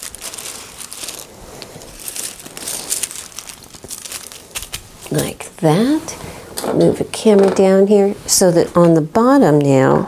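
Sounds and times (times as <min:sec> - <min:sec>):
tissue paper rustling: 0:00.0 - 0:05.3.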